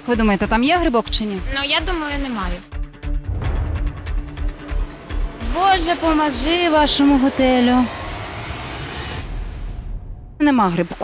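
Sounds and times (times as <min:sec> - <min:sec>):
steady rushing noise: 0:03.3 - 0:11.0.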